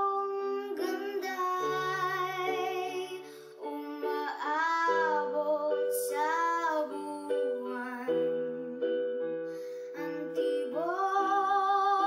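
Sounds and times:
girl singing: 0.0 - 12.0.

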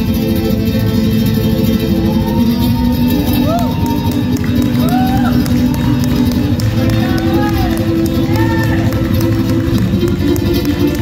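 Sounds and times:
audience voices: 0.0 - 11.0
flamenco acoustic guitar: 0.0 - 11.0.

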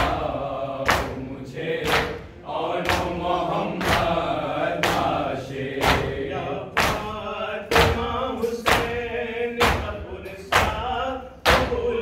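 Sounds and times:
chest-beating slaps: 0.0 - 9.0
men chanting together: 0.0 - 12.0.

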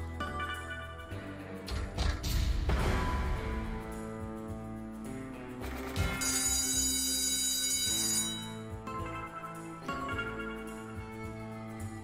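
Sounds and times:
slot game music: 0.0 - 11.8
sharp hit: 2.0 - 4.1
bright bell-like ringing: 6.2 - 10.8.

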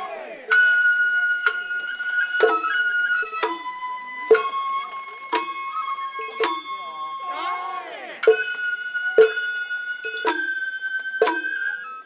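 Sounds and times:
bamboo flute long high note: 0.0 - 12.0
hand drum strikes: 9.2 - 9.4.

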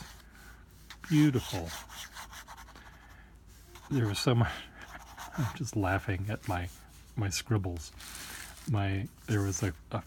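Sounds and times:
fountain pen scratching on paper: 1.1 - 2.9, 3.8 - 6.5.

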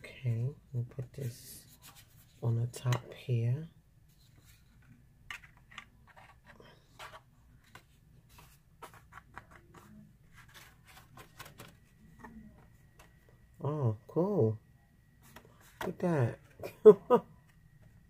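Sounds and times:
low room hum: 0.0 - 18.0
cardstock rustling and tapping: 4.3 - 13.2.

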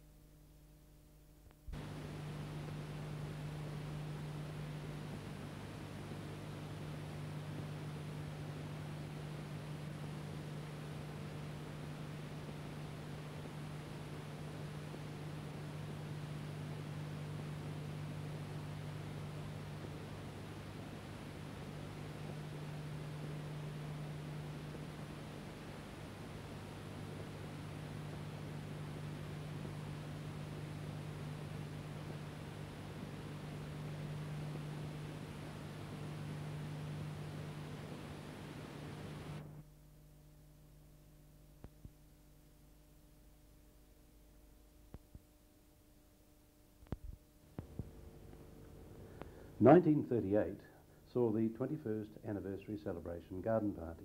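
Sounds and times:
film transfer hiss and hum: 0.0 - 54.0.

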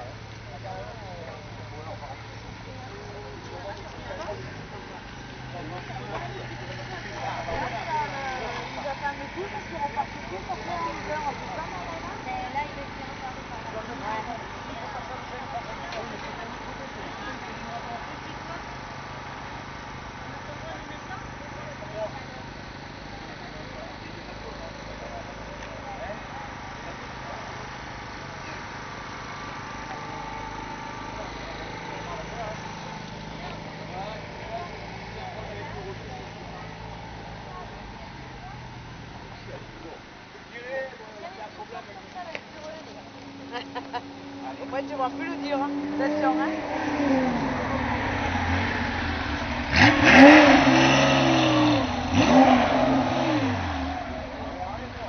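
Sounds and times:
engine idling: 0.0 - 46.8, 47.4 - 55.0
chatter of voices: 0.0 - 55.0
rally car engine passing by: 43.4 - 55.0.

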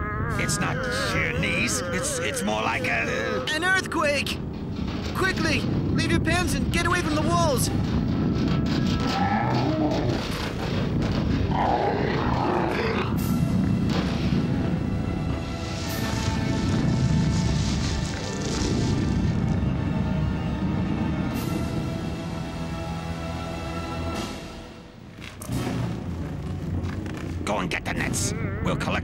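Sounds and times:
cartoon earthquake rumble: 4.4 - 22.0.

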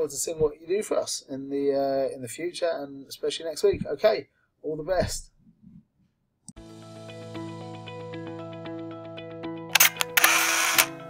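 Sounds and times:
soft sustained music: 6.6 - 11.0
camera shutter clicks: 9.7 - 11.0.

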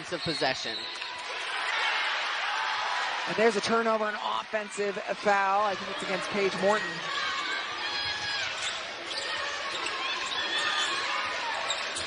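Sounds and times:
sneaker squeaks: 0.0 - 1.7, 7.4 - 12.0.

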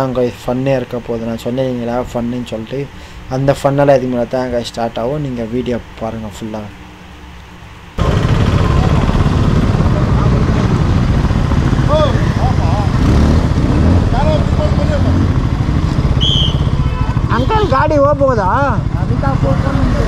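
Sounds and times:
motorcycle engine running: 8.0 - 20.0
short high chirp: 16.2 - 16.8.

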